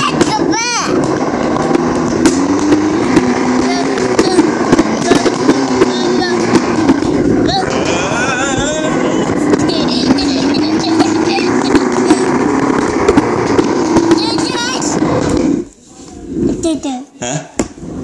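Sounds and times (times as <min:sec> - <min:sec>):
box scraping across floor: 0:09.1 - 0:16.8.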